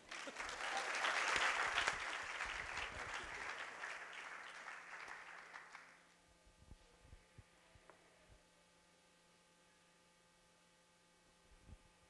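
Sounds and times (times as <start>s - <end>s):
audience applauding: 0.0s - 6.0s.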